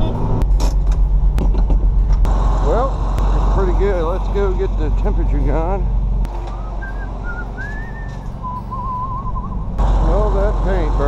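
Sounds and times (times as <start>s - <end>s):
engine idling: 0.0s - 11.0s
person whistling a tune: 6.5s - 9.6s.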